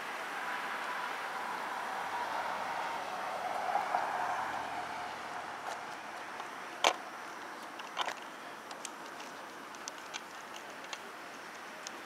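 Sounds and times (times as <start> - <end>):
faint steady tone: 0.0 - 12.0.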